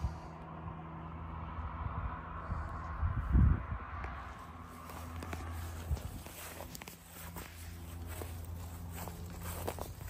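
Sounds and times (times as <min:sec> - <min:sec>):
low rumble: 0:00.0 - 0:06.9
footsteps on grass: 0:04.4 - 0:10.0.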